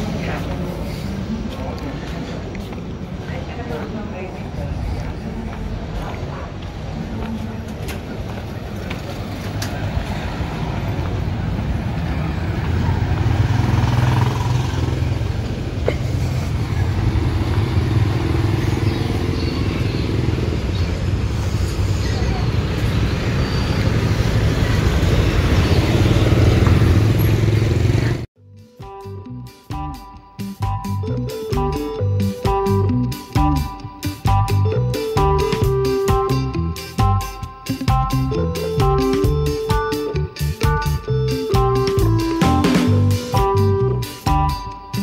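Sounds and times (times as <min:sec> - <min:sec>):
motor scooters passing: 0:06.9 - 0:28.3
guitar music: 0:28.4 - 0:45.0.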